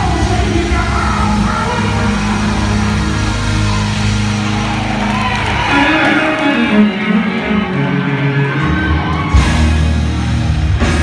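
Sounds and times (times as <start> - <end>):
live band playing loud rock: 0.0 - 11.0.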